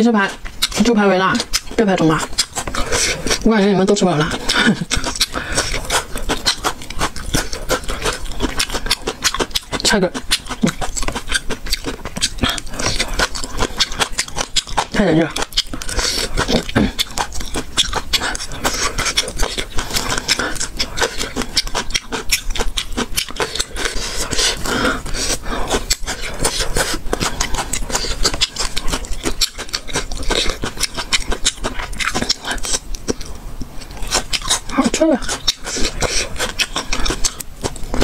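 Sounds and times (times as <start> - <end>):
chewing and mouth sounds: 0.0 - 38.0.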